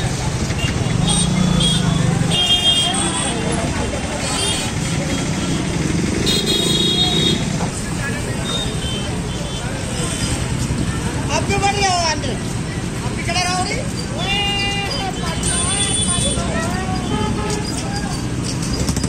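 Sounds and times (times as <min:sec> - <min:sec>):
motorcycle and vehicle engines: 0:00.0 - 0:19.0
voices of people: 0:00.0 - 0:19.0
vehicle horn tooting: 0:00.6 - 0:03.5, 0:06.2 - 0:07.5, 0:15.1 - 0:17.8.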